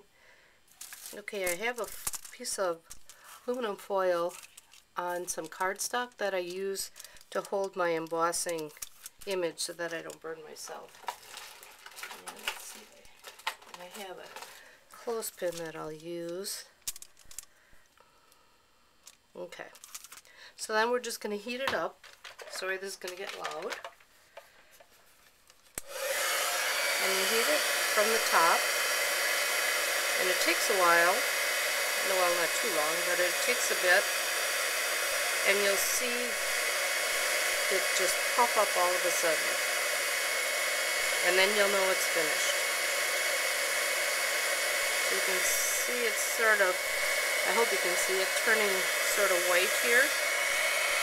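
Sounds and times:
heat tool blowing air with whine: 0:25.8 - 0:51.0.

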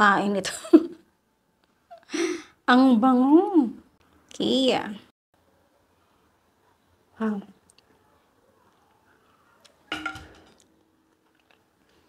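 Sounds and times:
spatula clattering on table: 0:09.9 - 0:10.6.

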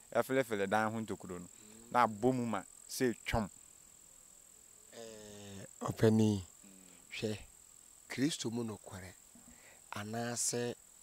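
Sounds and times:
crickets trilling: 0:00.0 - 0:11.0
men talking: 0:00.2 - 0:03.5, 0:05.0 - 0:07.5, 0:08.1 - 0:09.2, 0:09.9 - 0:10.8.

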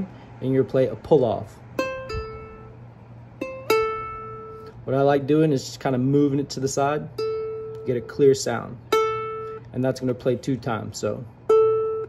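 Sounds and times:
ukulele pull-off notes: 0:00.0 - 0:12.0.

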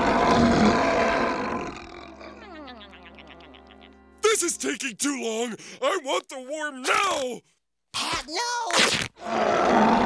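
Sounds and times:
loud rough cartoon snore: 0:00.0 - 0:02.2, 0:09.2 - 0:10.0.

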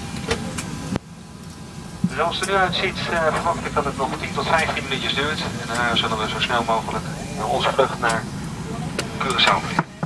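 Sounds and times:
airliner cabin hum: 0:00.0 - 0:10.0.

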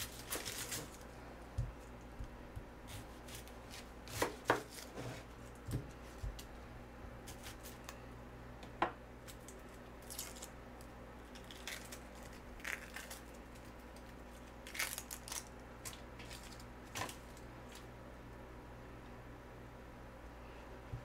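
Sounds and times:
onion skin peeling rustles: 0:00.0 - 0:06.6, 0:07.2 - 0:08.0, 0:09.2 - 0:17.9
knife cutting onion on board: 0:01.6 - 0:06.4.

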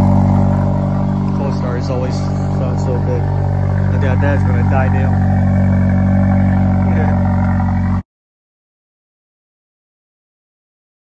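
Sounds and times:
engine running: 0:00.0 - 0:08.0.

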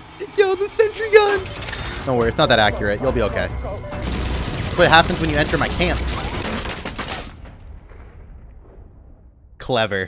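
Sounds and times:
rapid gunfire: 0:04.0 - 0:07.7
low rumble: 0:07.4 - 0:09.9.

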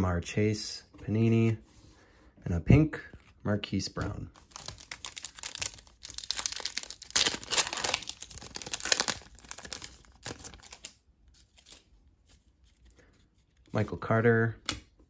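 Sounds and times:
foil wrapper tearing and crinkling: 0:04.4 - 0:10.9.

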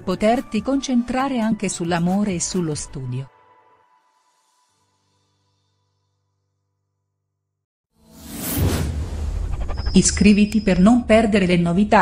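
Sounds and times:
whoosh sound effect: 0:08.0 - 0:10.4.

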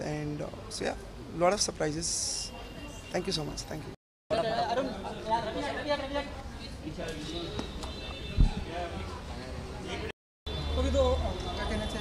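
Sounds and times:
indistinct chatter of voices: 0:04.3 - 0:12.0.

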